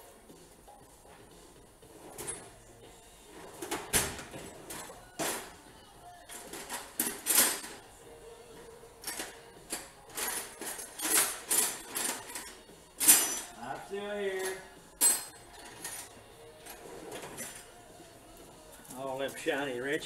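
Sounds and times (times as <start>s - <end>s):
metal tools clattering in toolbox: 6.3s - 7.8s, 9.0s - 17.7s.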